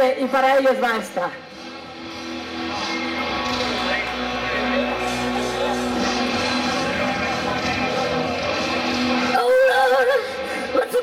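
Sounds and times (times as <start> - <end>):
rock band playing: 1.6 - 9.5.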